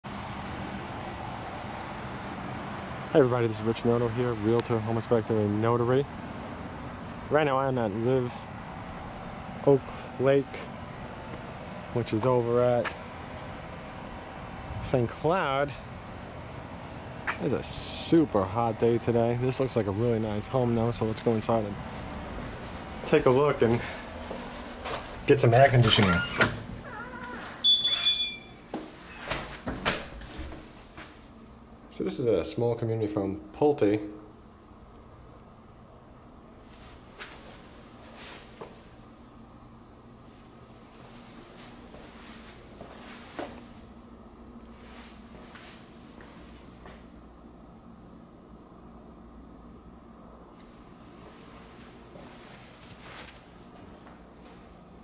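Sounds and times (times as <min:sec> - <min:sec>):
outdoor background noise: 0:00.1 - 0:55.0
door opening and shutting: 0:25.7 - 0:30.6
short high electronic beep: 0:27.6 - 0:28.5.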